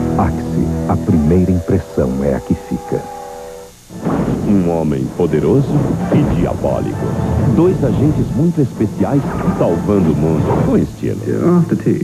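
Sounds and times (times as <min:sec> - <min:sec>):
person speaking: 0:00.0 - 0:03.1
held music chord: 0:00.0 - 0:12.0
low hum: 0:00.0 - 0:12.0.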